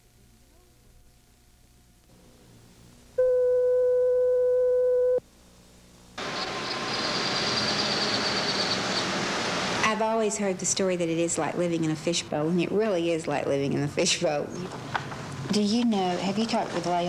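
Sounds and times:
tape static hiss: 0:00.0 - 0:07.2
electronic test tone: 0:03.2 - 0:05.2.

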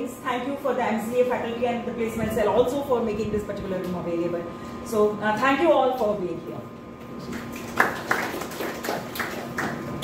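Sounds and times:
hand clapping: 0:07.2 - 0:10.0.

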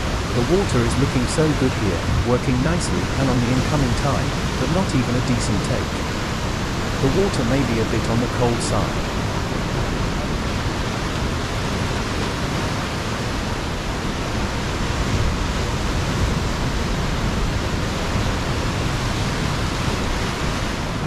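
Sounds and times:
ocean surf on rocky shore: 0:00.0 - 0:21.0.

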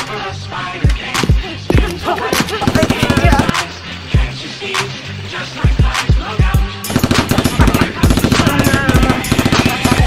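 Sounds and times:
music with heavy bass beat: 0:00.0 - 0:10.0
automatic gunfire: 0:02.6 - 0:03.6, 0:06.9 - 0:10.0.

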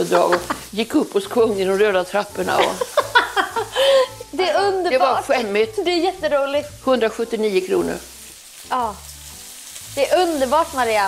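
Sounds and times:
bacon sizzling in a frying pan: 0:00.0 - 0:11.0.

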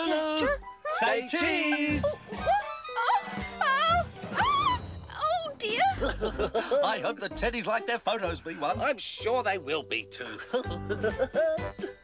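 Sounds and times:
high-pitched wavering vocal cries: 0:00.0 - 0:05.5
light background music: 0:00.0 - 0:12.0.

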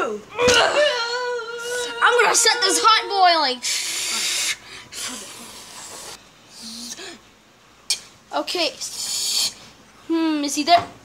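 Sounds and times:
person hissing through mouth: 0:03.6 - 0:07.2, 0:08.8 - 0:09.7.

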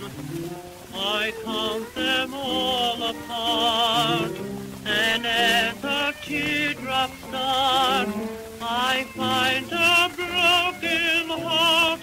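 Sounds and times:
orchestra playing: 0:00.0 - 0:12.0
record surface hiss and crackle: 0:00.0 - 0:12.0.

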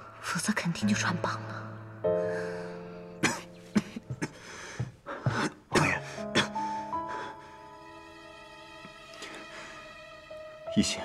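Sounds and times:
soft background music: 0:00.0 - 0:11.0
woman coughing: 0:03.2 - 0:04.4.

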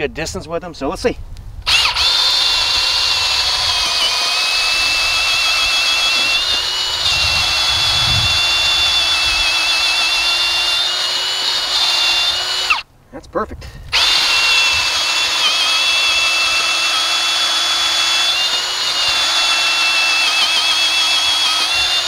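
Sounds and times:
cordless drill motor whine: 0:01.6 - 0:12.8, 0:13.9 - 0:22.0
drill bit churning soil: 0:01.7 - 0:12.8, 0:13.9 - 0:22.0.

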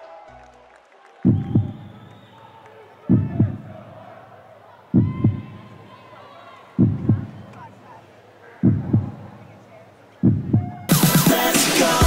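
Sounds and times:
heartbeat thumps: 0:01.3 - 0:01.9, 0:03.1 - 0:03.8, 0:05.0 - 0:05.5, 0:06.8 - 0:07.4, 0:08.6 - 0:09.3, 0:10.2 - 0:11.4
faint background murmur: 0:02.4 - 0:10.9
electronic dance music: 0:10.2 - 0:12.0.

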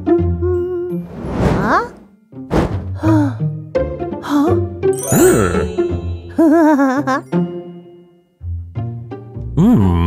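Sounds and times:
sudden thunk: 0:02.5 - 0:02.9.

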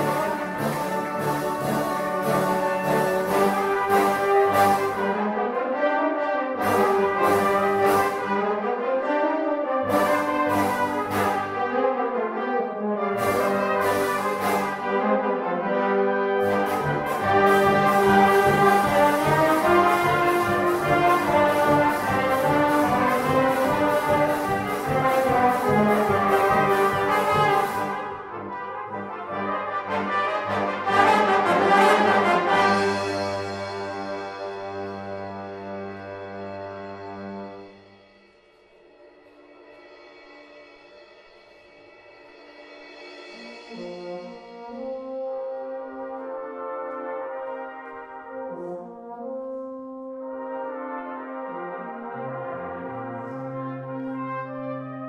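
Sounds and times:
busy drum rhythm: 0:00.0 - 0:05.2, 0:16.3 - 0:29.1, 0:42.1 - 0:45.6
brass band playing: 0:00.0 - 0:38.2, 0:42.6 - 0:55.0
cymbal and drum strikes: 0:37.1 - 0:45.1.

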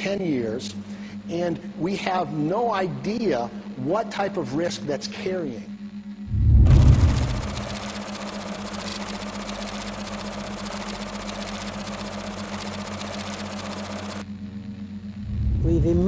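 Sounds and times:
steady low hum: 0:00.0 - 0:16.0
low swell: 0:06.3 - 0:07.8
electronic static hiss: 0:06.6 - 0:14.2.

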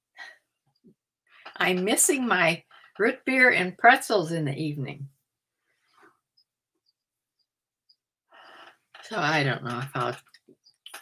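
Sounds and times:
faint breath: 0:08.3 - 0:08.9.

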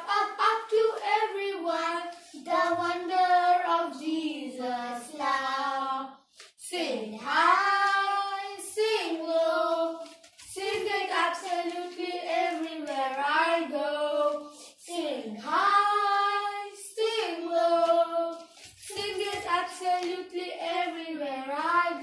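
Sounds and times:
children singing: 0:00.0 - 0:06.1, 0:07.2 - 0:22.0.

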